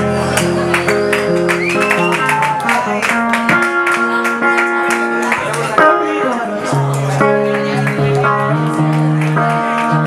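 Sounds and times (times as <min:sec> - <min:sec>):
acoustic and electric guitars: 0:00.0 - 0:10.0.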